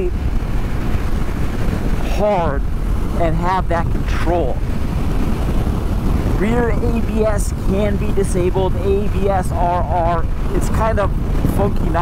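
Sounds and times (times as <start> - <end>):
motorcycle wind and road rumble: 0.0 - 12.0.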